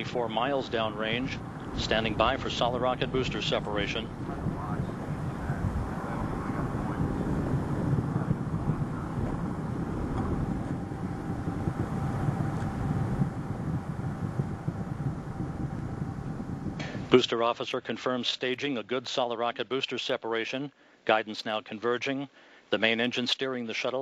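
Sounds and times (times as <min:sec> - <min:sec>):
rocket engines rumbling: 0:00.0 - 0:17.7
faint steady tone: 0:00.0 - 0:24.0.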